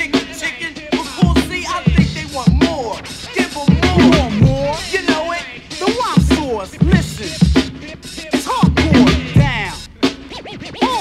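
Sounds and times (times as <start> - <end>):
hip hop backing track: 0.0 - 11.0
person rapping: 0.0 - 11.0
turntable scratches: 0.0 - 11.0.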